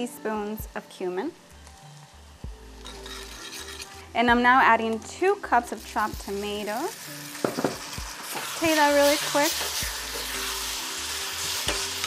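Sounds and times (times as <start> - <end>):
spoon clinking saucepan: 2.8 - 4.0
vegetables frying in oil: 5.0 - 12.0.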